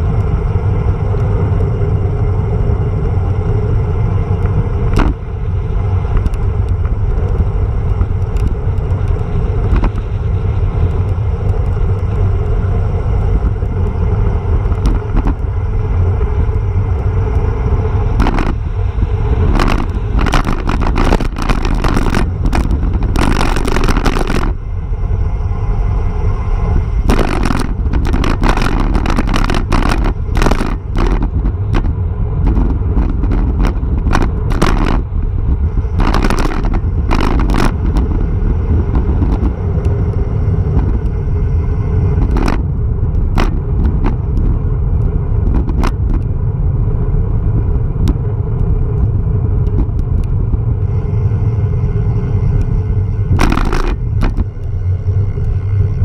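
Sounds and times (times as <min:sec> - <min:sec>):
tyre noise on asphalt: 0:00.0 - 0:56.0
wind rushing over microphone: 0:00.0 - 0:56.0.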